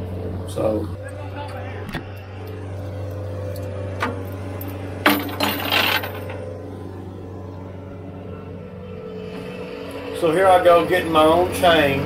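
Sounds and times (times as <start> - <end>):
diesel engine running: 0.0 - 12.0
loud metallic clatter: 4.6 - 6.5.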